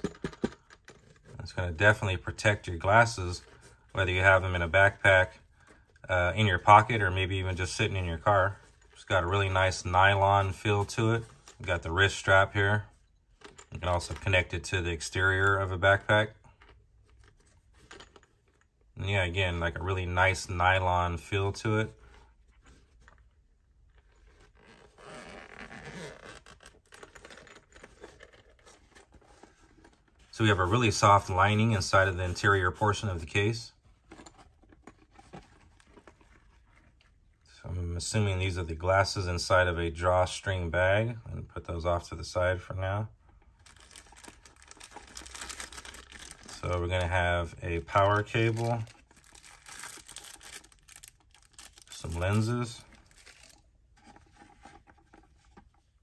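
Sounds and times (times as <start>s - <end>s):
zipper pulled open: 24.1s - 29.4s
case scratching and clicks: 24.2s - 30.1s
plastic packaging crinkling: 43.6s - 47.0s, 47.9s - 55.8s.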